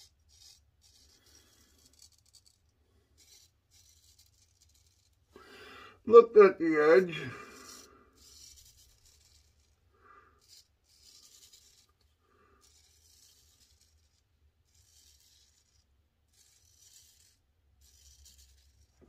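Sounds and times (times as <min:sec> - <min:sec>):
straight razor scraping stubble: 0:00.0 - 0:05.3, 0:06.0 - 0:19.0.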